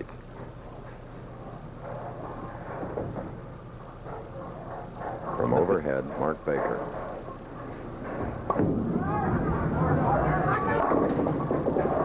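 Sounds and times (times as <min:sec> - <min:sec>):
bowling ball rolling on wood: 0:00.7 - 0:12.0
crowd voices: 0:08.9 - 0:12.0.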